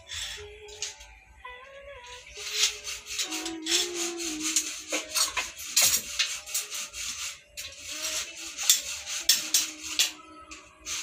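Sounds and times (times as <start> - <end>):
metal scraping on rebar: 2.1 - 11.0.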